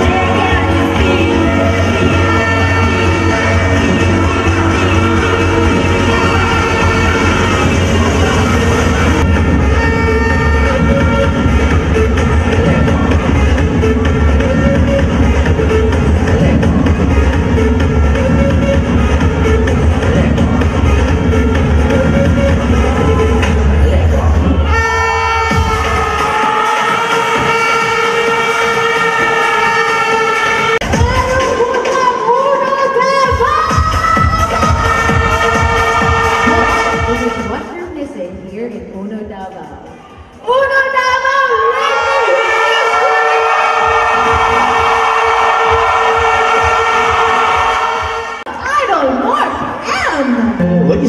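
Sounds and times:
crowd cheering: 0:24.6 - 0:37.5, 0:41.5 - 0:48.8.

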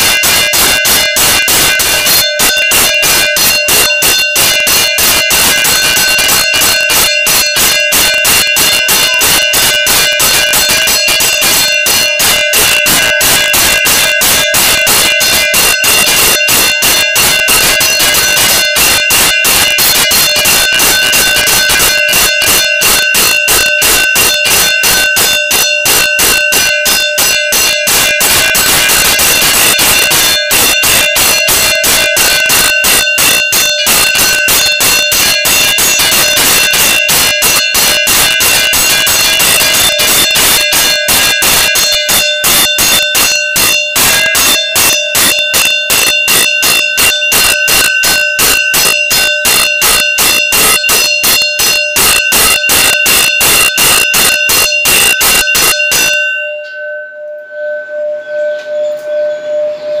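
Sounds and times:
temple bell ringing fast: 0:00.0 - 1:00.0.

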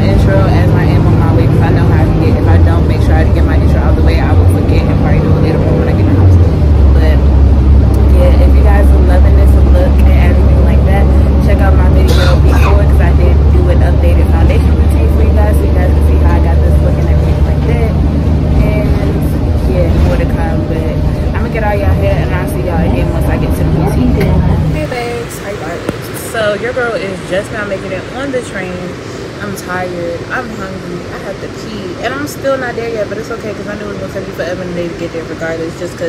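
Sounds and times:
car engine drone: 0:00.0 - 0:36.0
road noise: 0:00.0 - 0:36.0
woman talking: 0:00.0 - 0:36.0.

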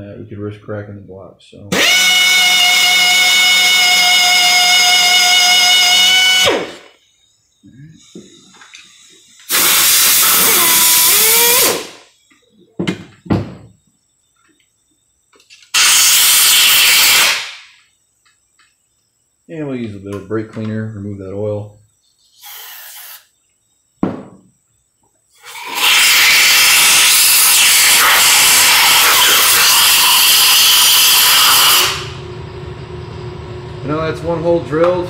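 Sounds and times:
pneumatic drill whining: 0:01.7 - 0:07.0, 0:08.0 - 0:12.0, 0:15.7 - 0:17.6, 0:25.4 - 0:32.2
compressed air blasts hissing: 0:08.0 - 0:12.1, 0:15.7 - 0:17.8, 0:22.2 - 0:23.4, 0:25.4 - 0:32.2.

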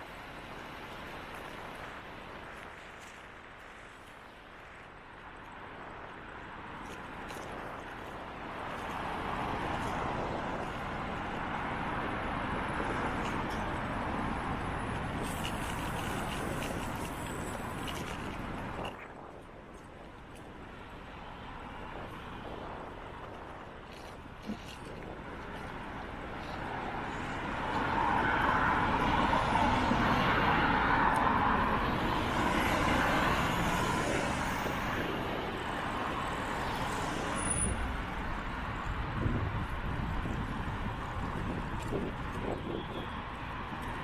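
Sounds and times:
road traffic rumble: 0:00.0 - 0:44.0
car passing: 0:25.4 - 0:42.5.

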